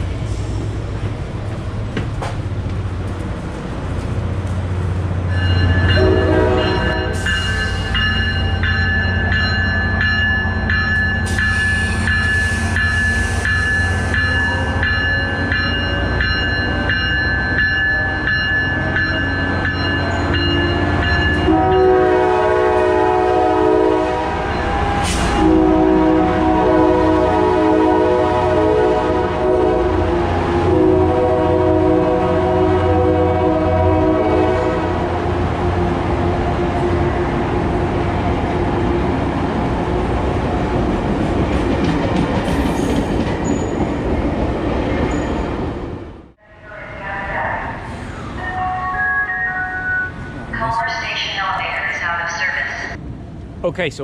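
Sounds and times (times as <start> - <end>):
diesel locomotive passing: 0.0 - 54.0
train horn chord: 5.8 - 7.7, 21.3 - 35.1.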